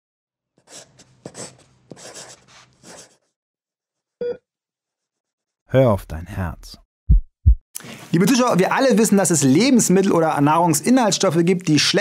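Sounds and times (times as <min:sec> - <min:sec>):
pen scratching on paper: 0:00.6 - 0:03.4.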